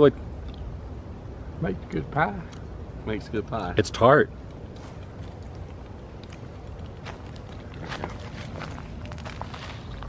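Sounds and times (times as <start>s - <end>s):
low steady rumble: 0.0s - 10.0s
footsteps on dry grass: 6.3s - 10.0s.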